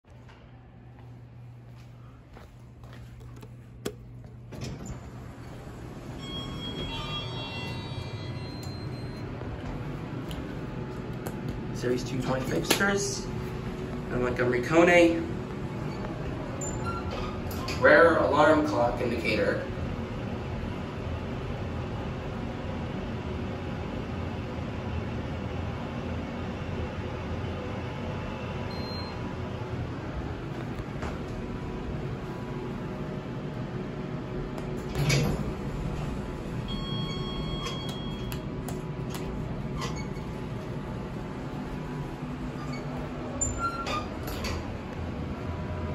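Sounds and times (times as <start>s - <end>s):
elevator doors sliding open: 4.3s - 10.8s, 11.6s - 19.0s, 34.6s - 45.9s
faint high tones: 6.2s - 9.2s.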